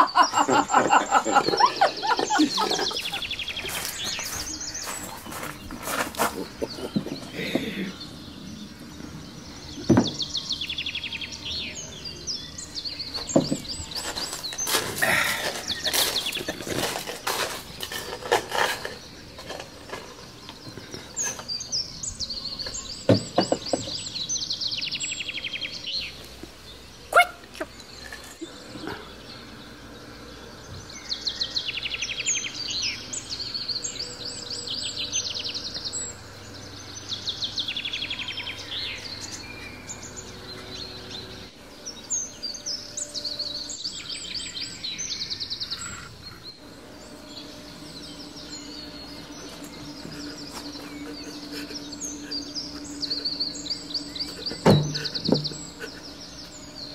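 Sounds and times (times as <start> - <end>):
songbirds singing: 0.0 - 56.9
clattering knocks: 54.5 - 55.7.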